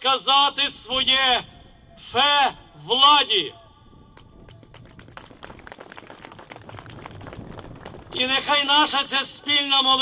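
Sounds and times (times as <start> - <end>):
crowd applauding: 4.2 - 8.2.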